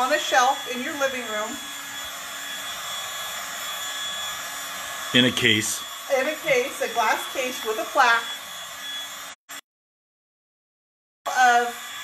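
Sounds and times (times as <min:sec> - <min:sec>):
heat gun blowing air: 0:00.0 - 0:09.4.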